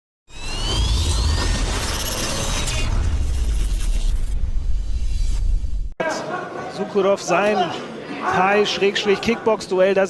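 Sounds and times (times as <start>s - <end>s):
deep bass rumble: 0.3s - 5.9s
rising whoosh: 0.3s - 6.0s.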